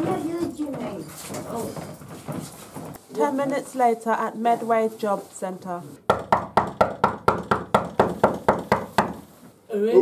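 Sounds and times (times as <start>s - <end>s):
rapid knocking on door: 6.0s - 9.3s.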